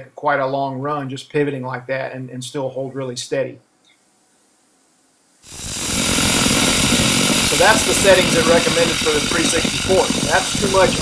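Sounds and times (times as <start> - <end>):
welding arc crackling: 5.4 - 11.0.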